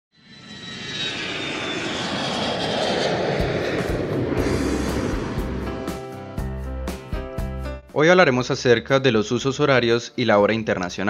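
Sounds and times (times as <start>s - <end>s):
airplane engine whine: 0.1s - 7.3s
deep beats: 3.3s - 7.8s.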